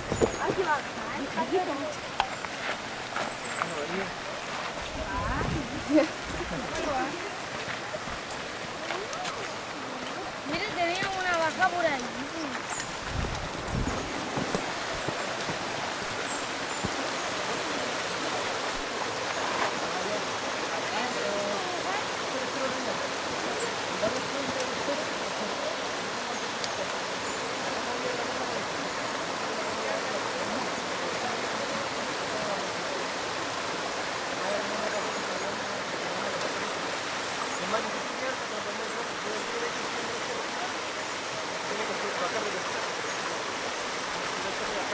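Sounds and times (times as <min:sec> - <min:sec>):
stream rushing over boulders: 0:00.0 - 0:44.9.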